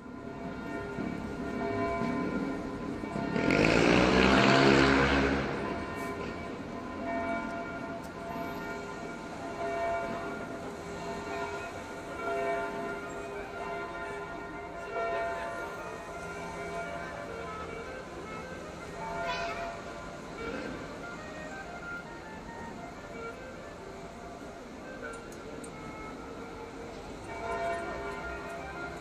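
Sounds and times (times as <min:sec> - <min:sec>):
vehicle passing: 0:01.2 - 0:08.5.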